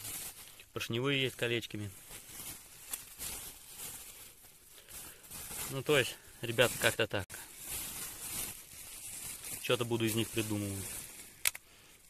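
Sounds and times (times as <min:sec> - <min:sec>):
faint rustling handling noise: 0:00.0 - 0:12.0.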